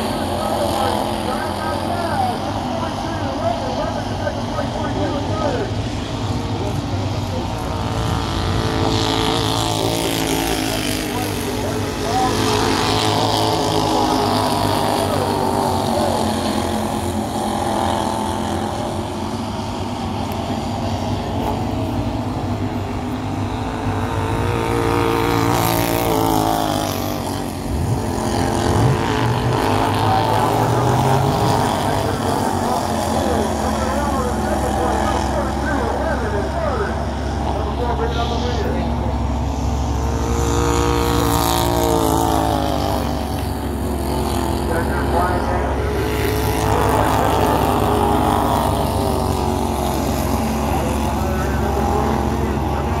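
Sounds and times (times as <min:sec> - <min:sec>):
race car engines: 0:00.0 - 0:53.0.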